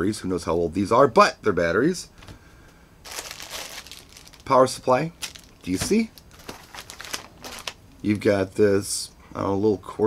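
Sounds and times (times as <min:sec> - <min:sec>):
plastic bag crinkling: 0:03.0 - 0:08.3.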